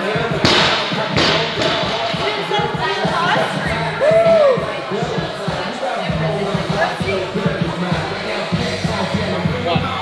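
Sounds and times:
background music: 0.0 - 10.0
people talking: 0.0 - 10.0.

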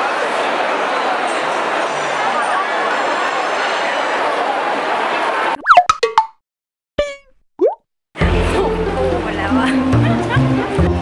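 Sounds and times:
short rising bloop: 5.6 - 6.3, 7.0 - 7.8.

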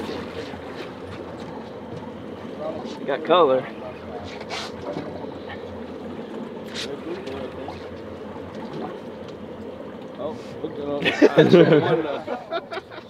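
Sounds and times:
low boat engine rumble: 0.0 - 13.0
water wash: 0.0 - 13.0
wind: 0.0 - 13.0.

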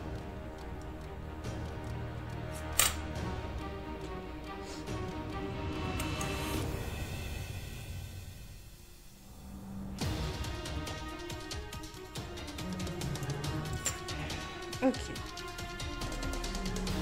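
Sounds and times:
background music with sustained tones: 0.0 - 17.0.

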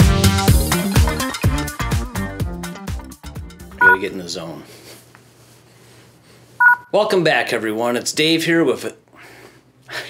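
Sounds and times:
two-pitch electronic beep: 3.8 - 4.0.

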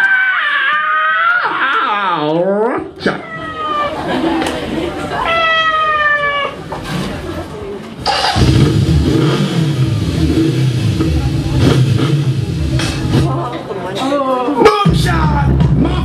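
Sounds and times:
deep bass-heavy music: 8.4 - 13.5, 14.8 - 16.0.

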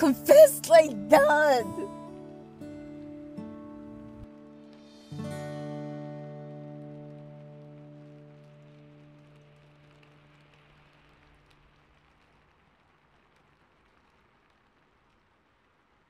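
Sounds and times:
rain-like hiss: 0.0 - 16.0.

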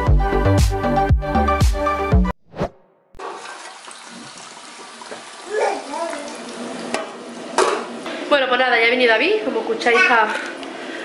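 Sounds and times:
background music: 0.0 - 2.4
water running in a shower: 3.2 - 7.5.

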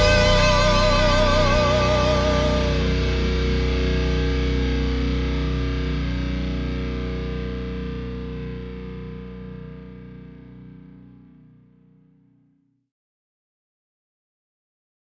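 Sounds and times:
distorted electric guitar chord: 0.0 - 6.8
bass guitar: 0.0 - 8.4.

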